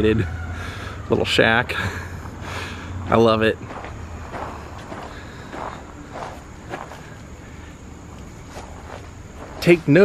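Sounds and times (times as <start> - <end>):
soft footsteps: 3.0 - 10.0.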